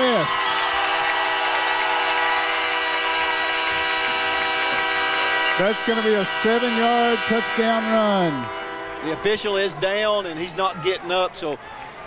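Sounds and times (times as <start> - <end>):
horn sounding steady chord: 1.4 - 10.6.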